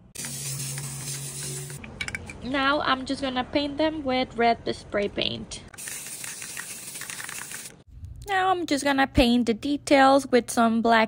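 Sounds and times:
aerosol can spraying hiss: 0.2s - 1.8s, 5.8s - 7.7s.

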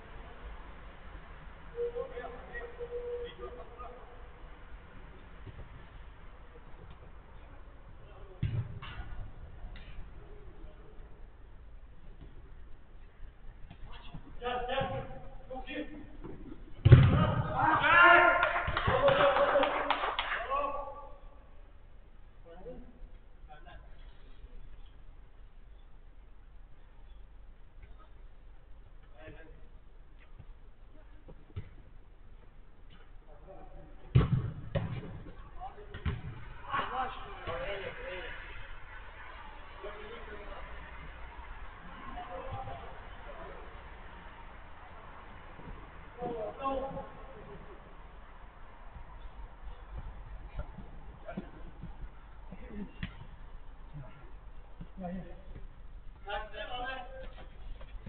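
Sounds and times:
football being kicked: 8.3s - 9.2s, 16.2s - 17.6s, 31.5s - 31.8s, 34.1s - 36.4s
players shouting: 17.0s - 19.9s, 36.4s - 47.2s.

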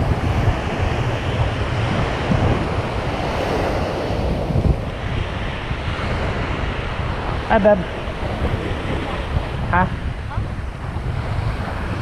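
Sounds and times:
surf waves breaking on beach: 0.0s - 12.0s
wind buffeting microphone: 0.0s - 12.0s.

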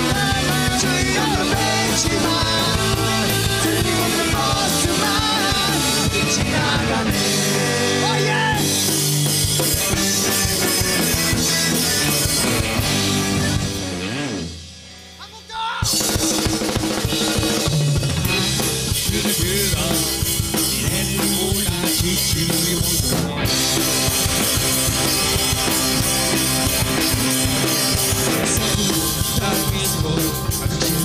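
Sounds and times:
punk rock band playing: 0.0s - 31.0s.

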